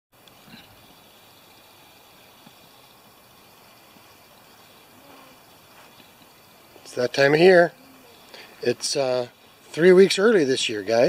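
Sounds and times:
faint background hiss: 0.2s - 11.0s.

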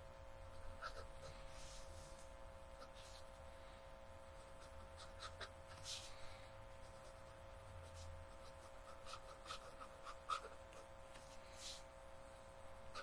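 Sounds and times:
faint steady hum: 0.0s - 13.0s
fountain pen scratching on paper: 0.5s - 2.1s, 4.4s - 6.1s, 6.8s - 11.8s.

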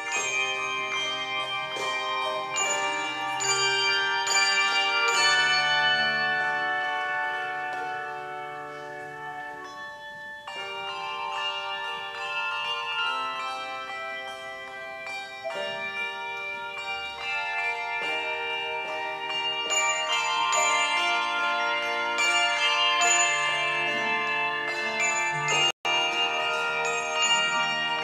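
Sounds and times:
handbell choir ringing: 0.0s - 28.0s.

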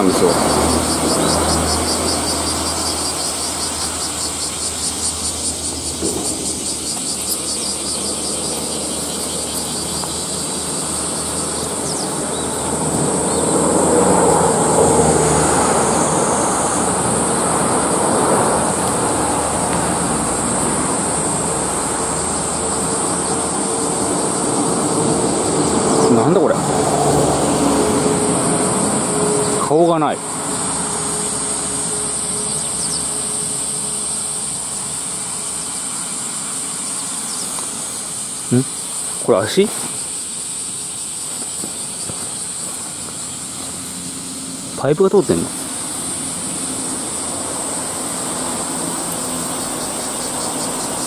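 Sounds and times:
high-pitched insect chorus: 0.0s - 51.0s.

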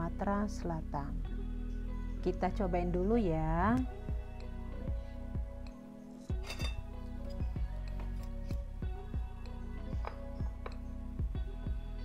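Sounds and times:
background music with held notes: 0.0s - 12.0s
light clink: 6.4s - 7.4s.

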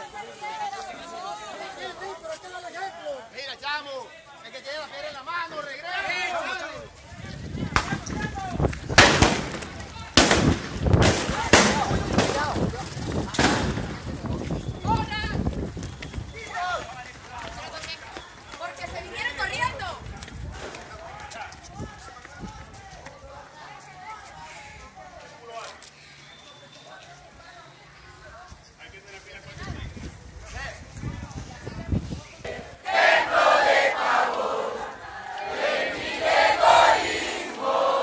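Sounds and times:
sharp bangs: 8.9s - 12.6s, 13.3s - 14.0s
crowd shouting: 32.5s - 38.0s.

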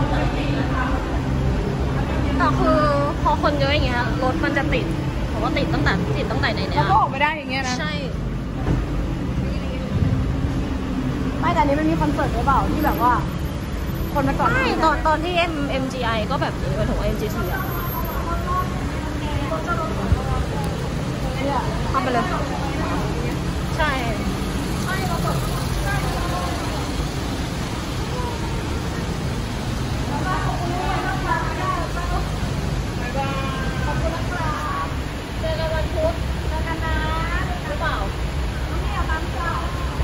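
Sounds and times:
car engines idling: 0.0s - 40.0s
faint voices: 0.0s - 40.0s.

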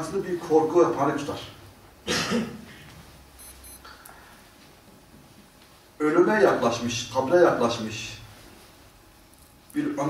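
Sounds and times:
short high electronic beeps: 3.4s - 3.8s.

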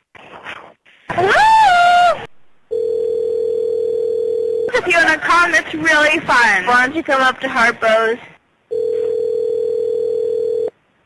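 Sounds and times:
telephone beep: 8.7s - 10.7s.

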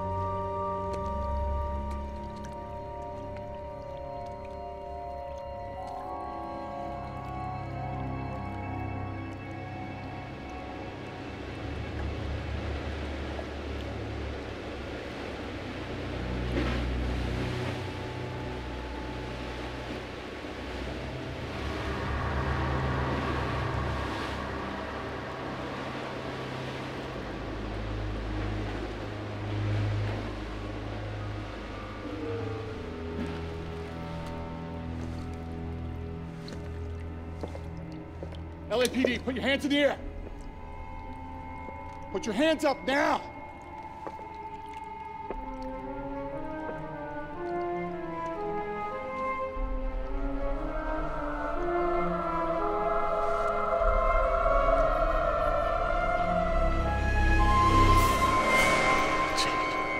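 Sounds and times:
sustained film score music: 0.0s - 59.9s
tone gliding downward: 30.6s - 59.9s.

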